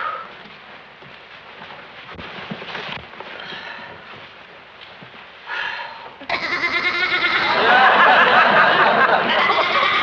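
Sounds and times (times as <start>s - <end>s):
sheep bleating: 6.3s - 7.6s, 9.4s - 10.0s.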